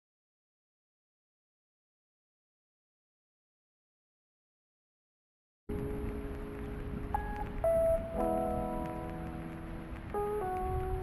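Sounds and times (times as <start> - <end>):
soft music: 5.7 - 11.0.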